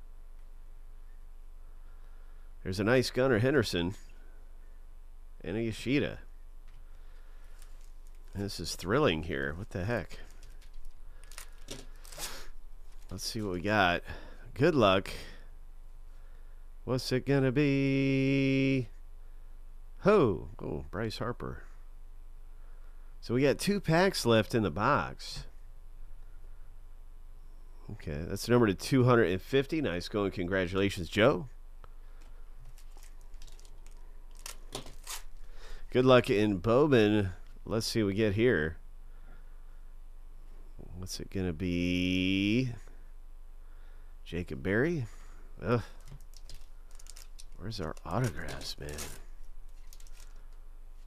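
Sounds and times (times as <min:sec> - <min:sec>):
foil wrapper crinkling: 0:07.4 - 0:08.5, 0:10.0 - 0:13.4, 0:32.2 - 0:35.8, 0:45.9 - 0:50.6
foil wrapper tearing: 0:07.5 - 0:08.4, 0:10.1 - 0:13.2, 0:32.6 - 0:35.5, 0:45.9 - 0:50.6.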